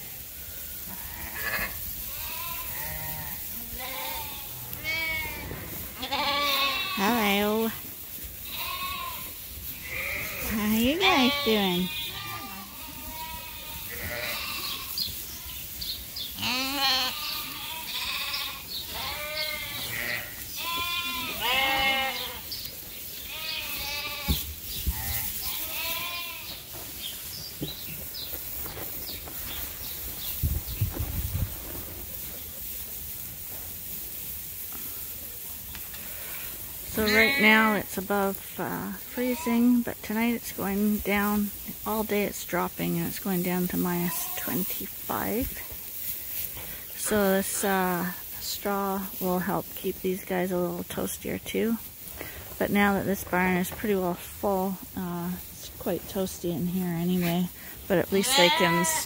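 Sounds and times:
sheep and lambs bleating: 0.0 - 26.8, 35.9 - 52.4, 56.2 - 59.0.

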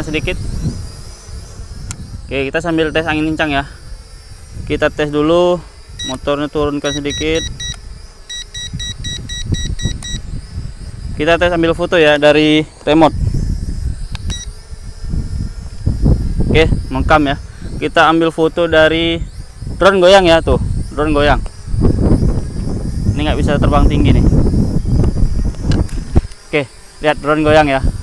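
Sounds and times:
gusty wind buffeting microphone: 0.0 - 26.4, 27.1 - 28.0
drone propellers whining: 0.0 - 28.0
short electronic beep: 6.9 - 10.2.

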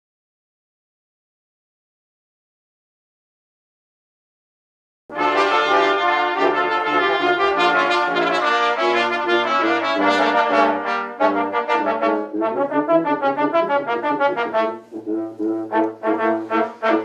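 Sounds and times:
brass ensemble playing: 5.1 - 17.0
low tuba line: 5.1 - 17.0.

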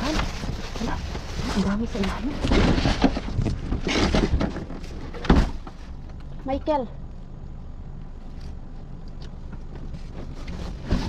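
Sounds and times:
cardboard and plastic rustling: 0.0 - 6.6, 9.5 - 11.0.

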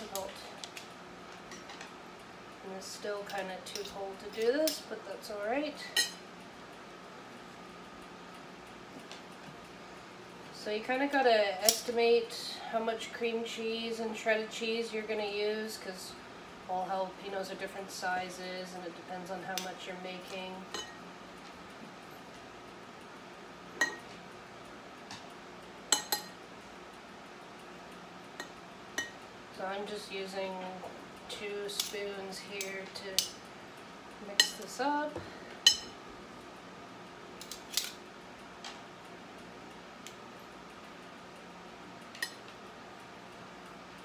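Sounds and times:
faint steady hum: 0.0 - 44.0.

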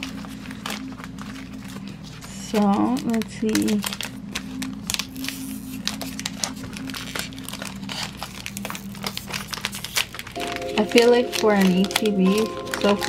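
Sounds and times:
foil wrapper crinkling: 0.0 - 13.0.

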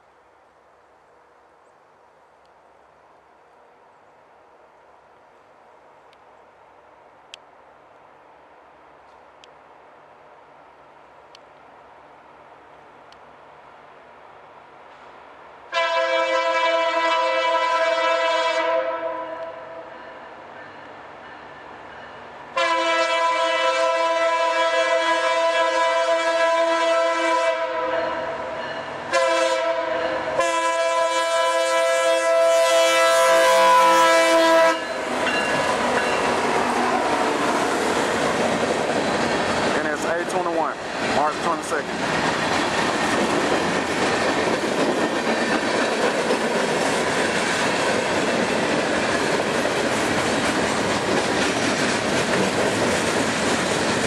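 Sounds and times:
locomotive horn chord: 15.7 - 19.9, 22.6 - 28.3, 29.1 - 35.2
locomotive engine passing: 32.8 - 54.0
rail clatter: 34.8 - 54.0.

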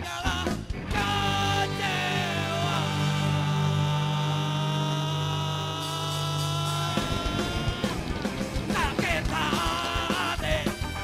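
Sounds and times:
sustained electric drone chord: 1.5 - 5.8.

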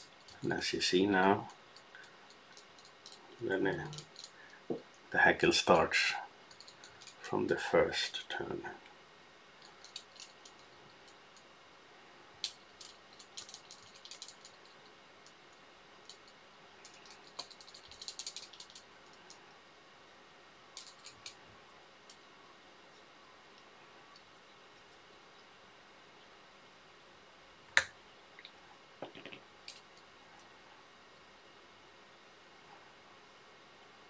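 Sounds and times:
small metal tools clicking: 1.8 - 3.2, 3.8 - 4.4, 9.6 - 11.2, 12.4 - 15.4, 16.0 - 19.3.

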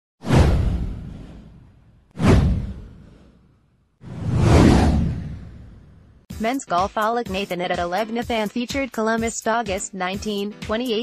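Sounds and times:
whoosh sweeping down: 0.2 - 3.4, 4.0 - 6.2
deep low rumble: 4.1 - 6.2.

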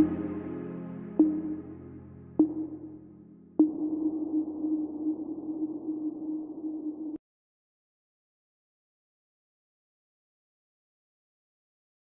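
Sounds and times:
ambient chord: 0.0 - 6.8
sonar-like pings with low hum: 1.2 - 1.7, 2.4 - 3.0, 3.6 - 7.2.

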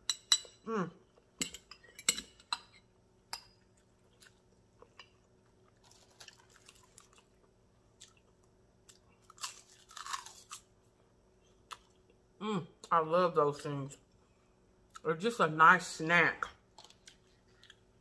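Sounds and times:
crunching seaweed: 9.2 - 10.6.

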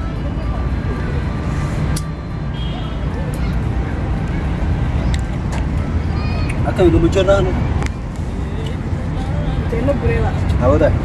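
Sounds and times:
low outdoor rumble: 0.0 - 11.0.

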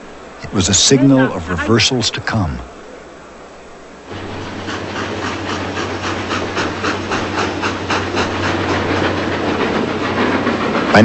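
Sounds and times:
train wheels clattering over rails: 4.1 - 11.0.

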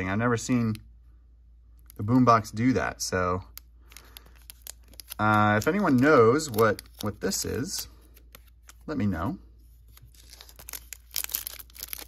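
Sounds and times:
foil wrapper crinkling and tearing: 3.8 - 8.9, 9.8 - 12.0.

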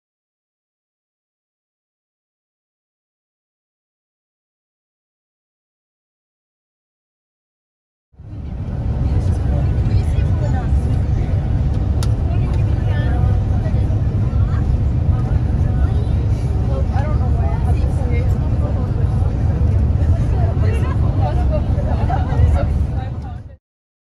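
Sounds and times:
faint voices talking: 8.2 - 23.6
vehicle rumble inside cabin: 8.2 - 23.6.

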